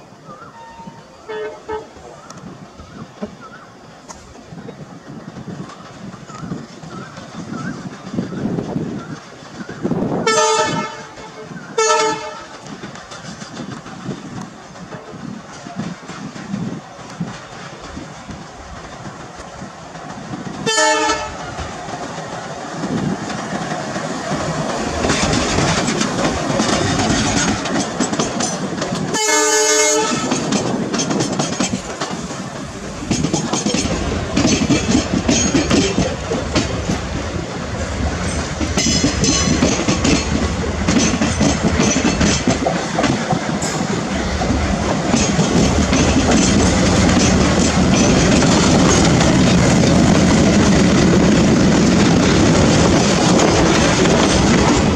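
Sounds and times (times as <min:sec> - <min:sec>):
diesel locomotive engine hum: 0:00.0 - 0:54.9
locomotive horn blasts: 0:00.6 - 0:01.9, 0:10.2 - 0:12.6, 0:20.6 - 0:21.5, 0:29.1 - 0:30.4
train wheels clacking on rail joints: 0:00.8 - 0:54.9.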